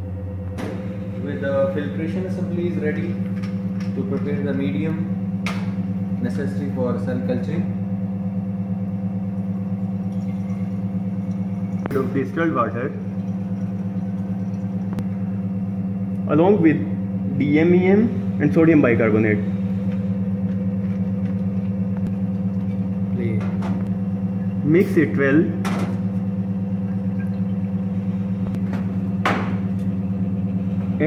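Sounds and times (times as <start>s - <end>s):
safety cabinet blower humming: 0.0s - 31.0s.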